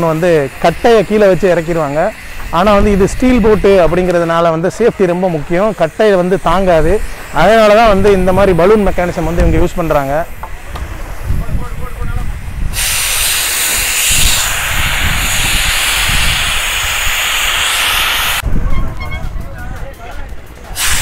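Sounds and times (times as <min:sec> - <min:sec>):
men talking: 0:00.0 - 0:12.6, 0:19.2 - 0:20.8
compressed air hissing: 0:00.0 - 0:18.5, 0:20.7 - 0:21.0.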